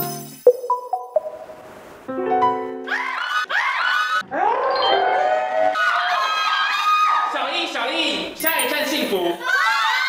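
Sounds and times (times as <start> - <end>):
people shouting excitedly: 9.4 - 10.0.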